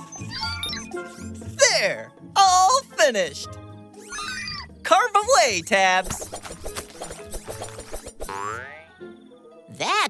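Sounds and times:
children's background music: 0.0s - 10.0s.

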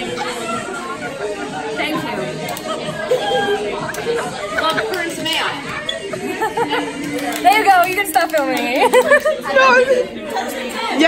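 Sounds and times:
indistinct chatter of people: 0.0s - 11.0s.

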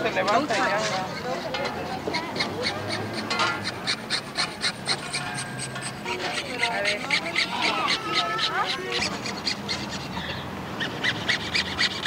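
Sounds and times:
hand file scraping metal: 0.3s - 12.0s.

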